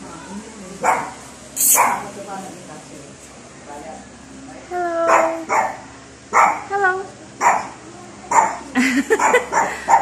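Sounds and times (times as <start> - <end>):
small dog barking: 0.8 - 2.1, 5.1 - 6.7, 7.4 - 10.0.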